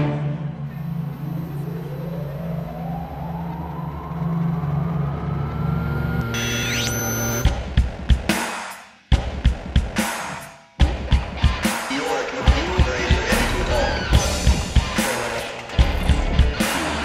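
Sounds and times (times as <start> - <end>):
high gliding tones: 0.0 - 7.5
low synthesizer drone: 0.0 - 7.5
rising synth pitch sweep: 0.0 - 7.5.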